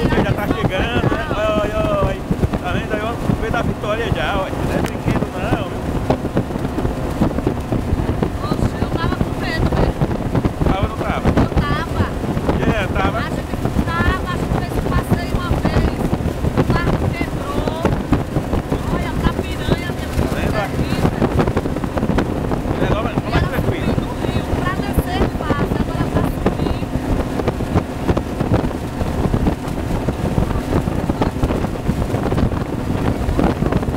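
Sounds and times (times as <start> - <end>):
voices calling out: 0.0 - 5.8
motorboat engine running: 0.0 - 33.9
water rushing: 0.0 - 33.9
wind buffeting microphone: 0.0 - 33.9.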